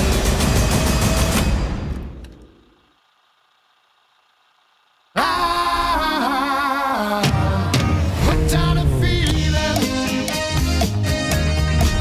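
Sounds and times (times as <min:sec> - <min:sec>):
click: 0:02.2 - 0:02.6
pop song from cassette tape: 0:05.2 - 0:12.0.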